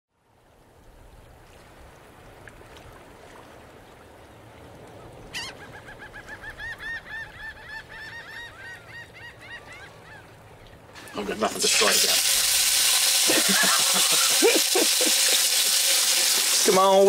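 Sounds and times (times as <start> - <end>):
water: 0.1 - 17.0
wind: 0.1 - 17.0.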